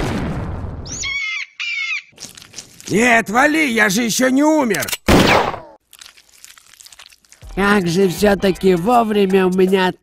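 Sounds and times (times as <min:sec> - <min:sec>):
vulture tearing at flesh: 0:02.1 - 0:03.0, 0:05.6 - 0:07.5
cartoon pistol shot: 0:05.0 - 0:05.8.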